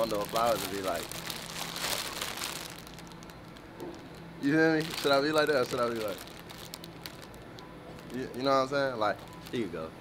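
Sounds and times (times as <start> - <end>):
cellophane crinkling: 0.0 - 9.9.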